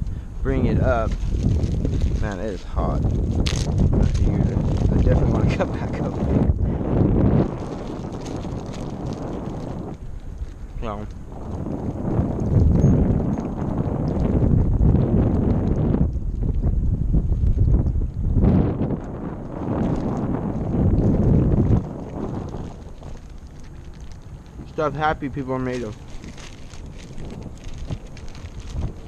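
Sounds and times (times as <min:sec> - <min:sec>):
wind buffeting microphone: 0:00.0 - 0:29.0
person speaking: 0:02.2 - 0:03.0, 0:04.0 - 0:06.4, 0:10.8 - 0:11.1, 0:24.6 - 0:26.0.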